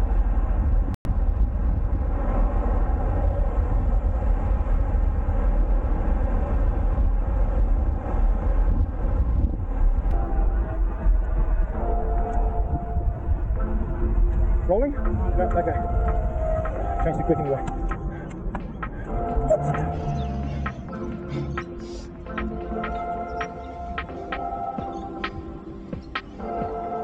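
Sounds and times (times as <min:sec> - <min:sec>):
wind buffeting microphone: 0:00.0 - 0:26.8
road noise: 0:00.0 - 0:27.0.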